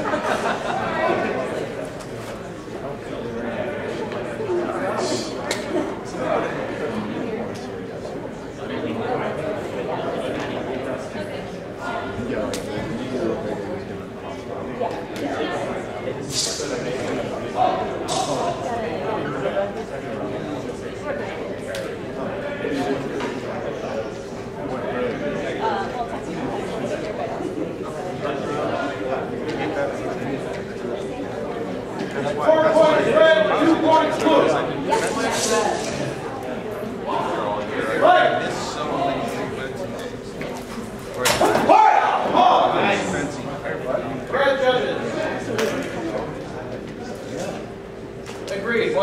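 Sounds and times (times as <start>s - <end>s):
murmur of voices in a hall: 0.0s - 49.0s
man shouting: 41.7s - 42.7s.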